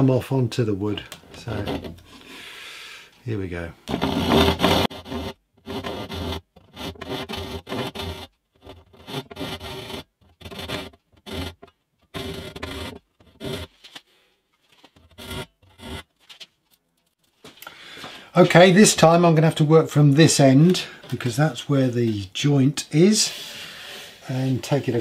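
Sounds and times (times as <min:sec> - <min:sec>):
hand saw rasping strokes: 0:03.9 - 0:11.6, 0:12.2 - 0:13.7.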